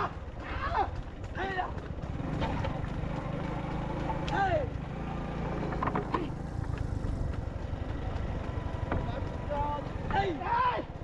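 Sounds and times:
person shouting: 0.0 - 1.7, 10.1 - 10.9
vehicle engine rumble: 0.0 - 11.0.

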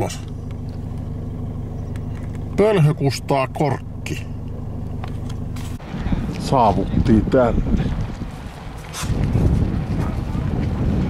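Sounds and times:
car engine low hum from cabin: 0.0 - 11.0.

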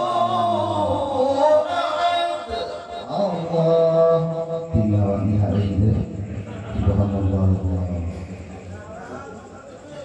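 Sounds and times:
man reciting melodically into microphone: 0.0 - 8.4.

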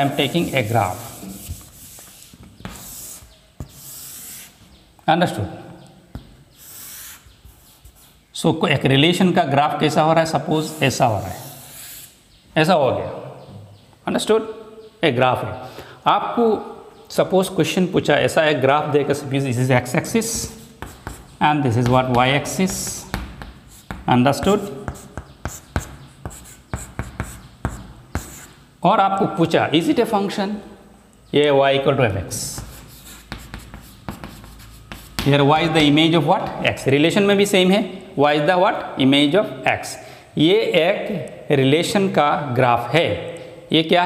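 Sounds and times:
chalk tapping on chalkboard: 0.0 - 4.6, 20.3 - 28.6, 32.4 - 36.6
chalk scraping along board: 0.0 - 4.7, 6.5 - 8.2, 10.6 - 12.2, 20.2 - 28.6, 32.5 - 36.0.

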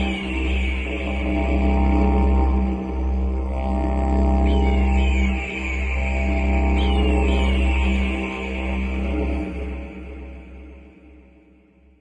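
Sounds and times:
didgeridoo drone: 0.0 - 11.3.

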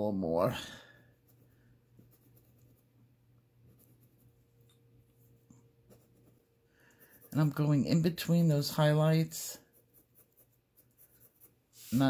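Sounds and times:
low steady hum: 0.0 - 12.0
pencil scratching on paper: 1.1 - 2.9, 3.6 - 4.5, 5.8 - 12.0.

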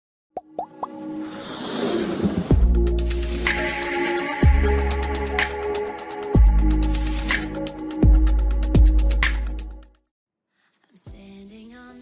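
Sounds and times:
cartoon plops rising in pitch: 0.4 - 1.0
whoosh: 1.2 - 2.8.

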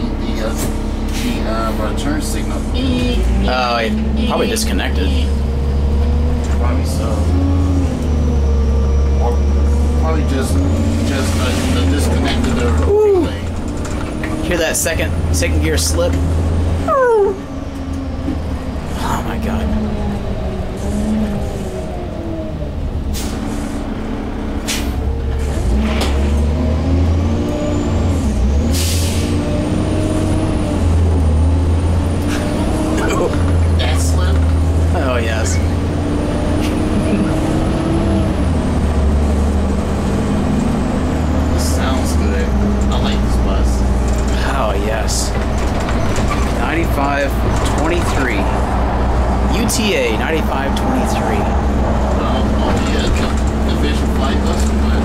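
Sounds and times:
bus engine changing gears: 0.0 - 55.0
body rattles and clicks: 45.3 - 46.6.

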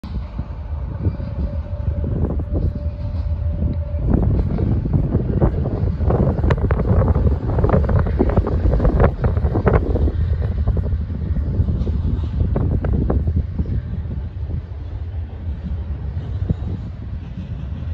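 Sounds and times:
freight train rumbling past: 0.0 - 17.9
wind buffeting microphone: 0.0 - 17.9.

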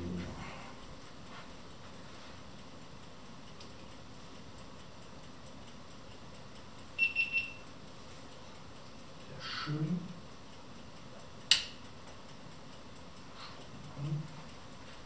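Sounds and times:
short high electronic beeps: 7.0 - 7.6.

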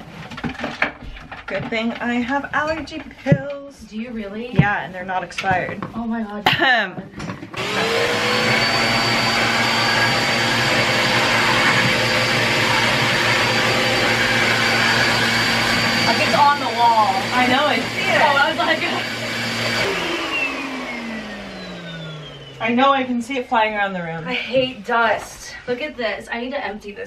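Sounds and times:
vacuum cleaner whining: 7.2 - 25.8
vacuum motor winding down: 7.5 - 23.6.

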